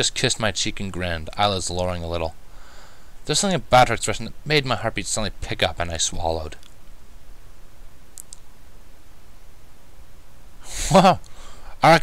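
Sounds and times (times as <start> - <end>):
low background hum: 0.0 - 12.0
faint clicks: 6.6 - 7.0, 8.1 - 8.5.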